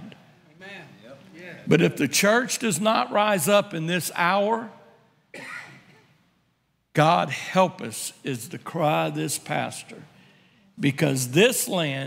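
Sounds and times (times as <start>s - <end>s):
man clearing his throat: 5.3s - 6.2s.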